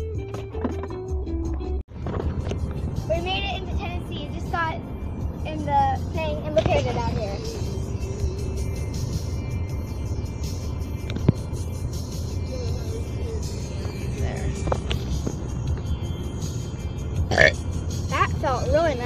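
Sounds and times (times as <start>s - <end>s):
car cabin road and engine rumble: 0.2s - 19.0s.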